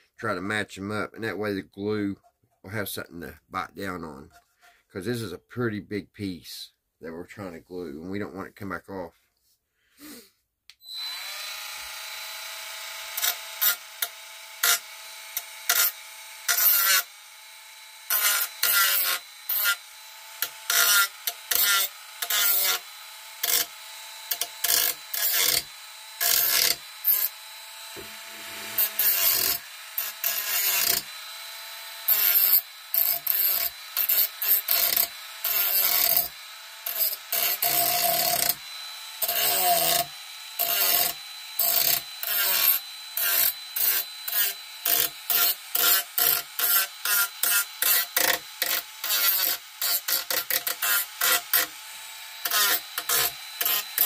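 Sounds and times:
rotary tool whining: 0:10.8 - 0:54.0
cutting wheel rasping into wood: 0:11.0 - 0:54.0.

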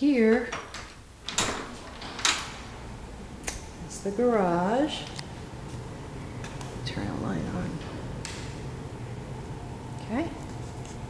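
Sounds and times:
door latch clicks: 0:00.5 - 0:03.8
door swishing open: 0:00.5 - 0:04.3.

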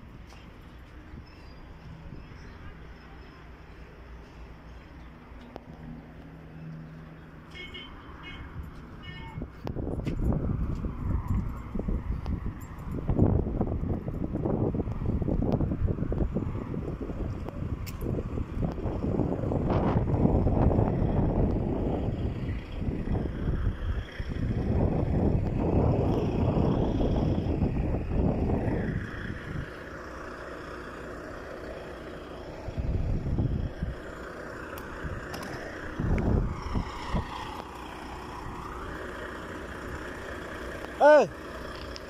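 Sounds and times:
wind buffeting microphone: 0:08.5 - 0:29.9, 0:32.6 - 0:38.7.

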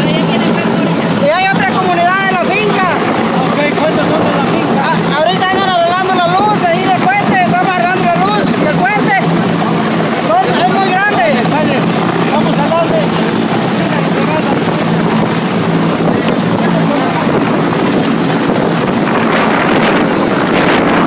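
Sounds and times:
mechanical drone with low hum: 0:00.0 - 0:21.0
man's raised voice: 0:01.2 - 0:09.3, 0:10.2 - 0:15.1.

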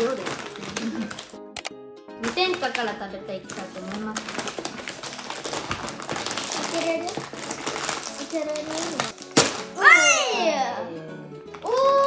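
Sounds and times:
chip bag crinkling: 0:00.0 - 0:01.4, 0:02.2 - 0:09.8.

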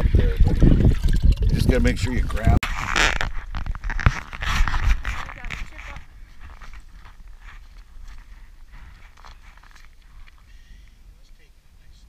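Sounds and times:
footsteps crunching through snow: 0:02.6 - 0:10.4.

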